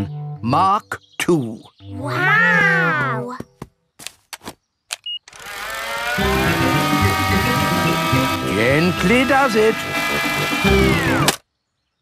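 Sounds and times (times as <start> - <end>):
toy propeller motor buzzing whine: 5.3 - 11.4.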